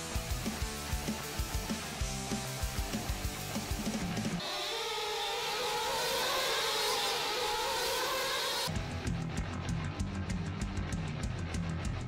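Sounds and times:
rc buggy engines whining: 3.7s - 8.8s.

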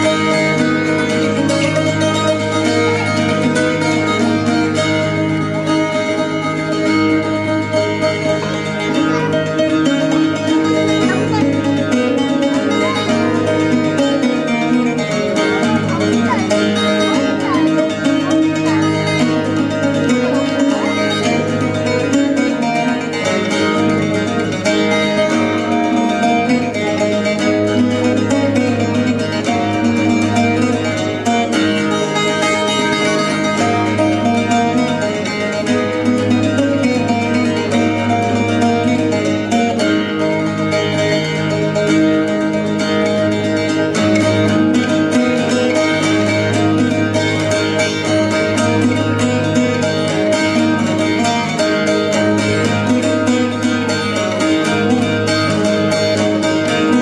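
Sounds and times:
cittern playing a tune: 0.0s - 57.0s.

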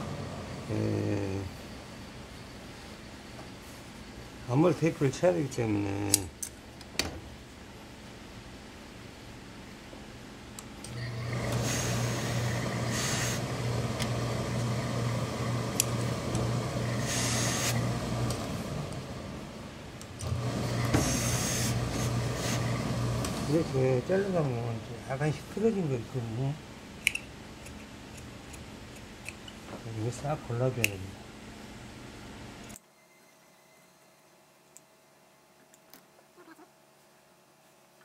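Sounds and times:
steam iron low hum: 0.0s - 6.3s, 10.9s - 26.5s
steam hissing: 11.3s - 18.8s, 20.3s - 23.8s.

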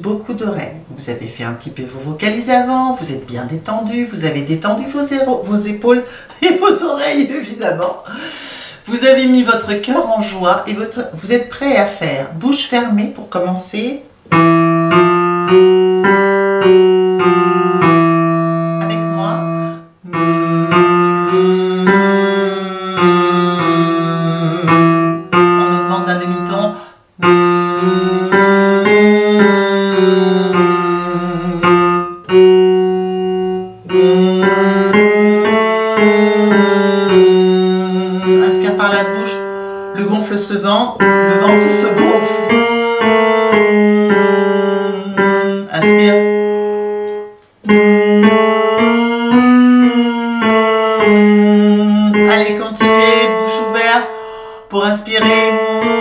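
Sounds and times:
electric keyboard scale: 14.2s - 56.0s
person humming: 17.2s - 56.0s.

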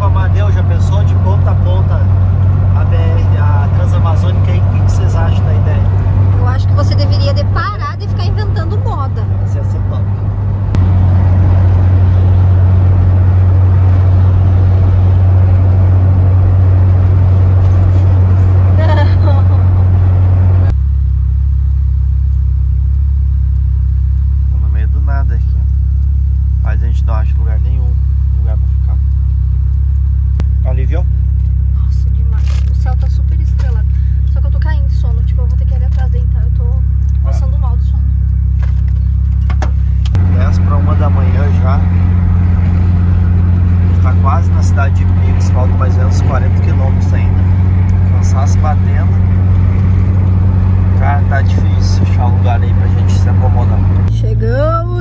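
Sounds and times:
van engine droning: 0.0s - 55.0s.

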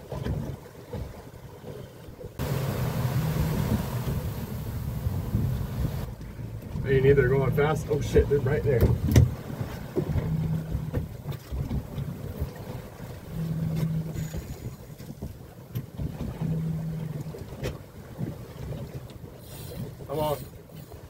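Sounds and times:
water noise: 0.0s - 21.0s
wind: 0.0s - 21.0s
low hum: 2.4s - 8.4s, 12.4s - 15.0s, 16.2s - 17.4s.

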